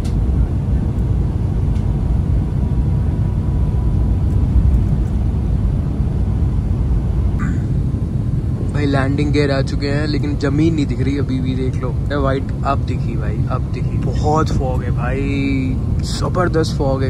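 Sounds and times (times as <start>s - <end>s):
airliner cabin rumble: 0.0s - 17.0s
faint steady whine: 0.0s - 17.0s.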